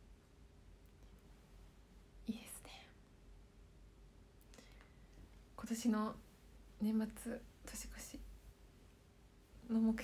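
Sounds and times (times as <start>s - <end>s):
woman whispering: 2.2s - 3.1s, 6.8s - 8.3s.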